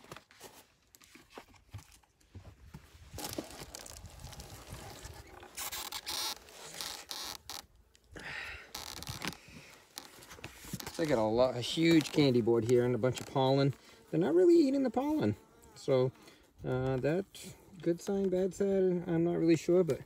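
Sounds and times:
hive tool scraping wooden cover: 8.8 - 16.5.

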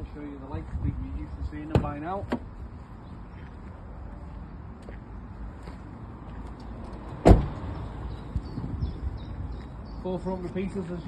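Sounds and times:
van door shutting thud: 7.2 - 7.5.

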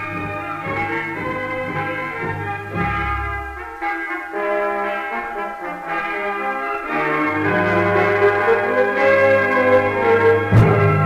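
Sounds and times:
orchestra playing held chords: 0.0 - 11.0.

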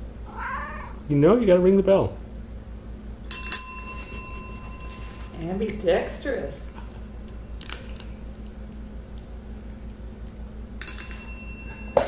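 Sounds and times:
service bell ding: 3.3 - 5.4, 10.8 - 12.0.

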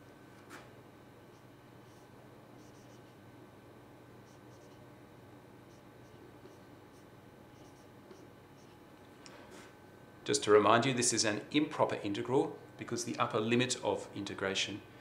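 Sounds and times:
low room hiss: 0.0 - 15.0
marker squeaking on whiteboard: 1.3 - 3.2, 4.3 - 4.8, 5.7 - 8.8.

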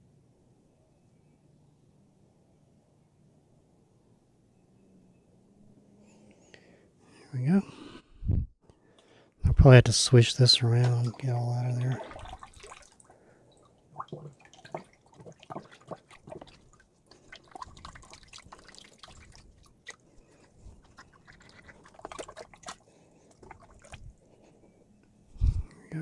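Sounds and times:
water splashing and dripping: 10.6 - 24.1.

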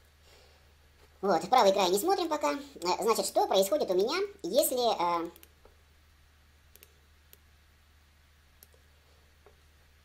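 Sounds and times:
faint computer mouse clicks: 5.4 - 5.6, 6.7 - 7.4.

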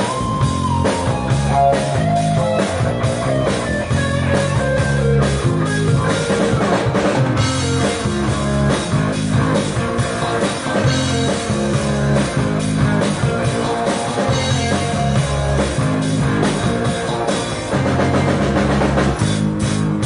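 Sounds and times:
drum kit beat: 0.0 - 20.0
electric guitars: 0.0 - 20.0.

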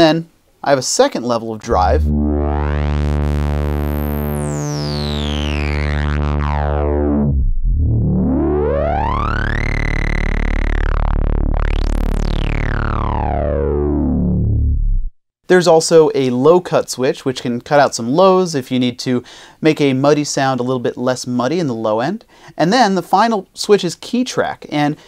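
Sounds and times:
synthesizer filter sweep: 1.6 - 15.2.

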